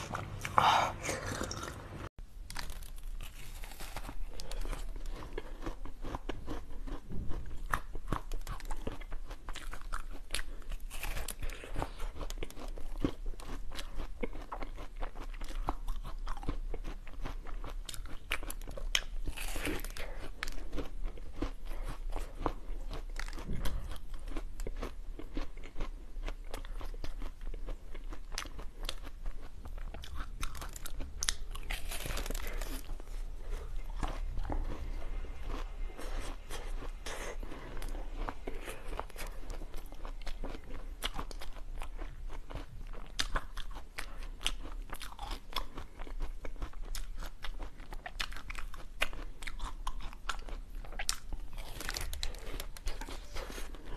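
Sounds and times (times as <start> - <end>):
crunchy treat being chewed: 0.0 - 53.9.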